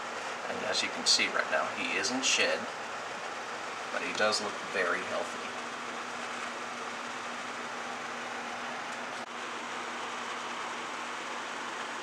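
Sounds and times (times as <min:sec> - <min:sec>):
ventilation hiss and hum: 0:00.0 - 0:12.0.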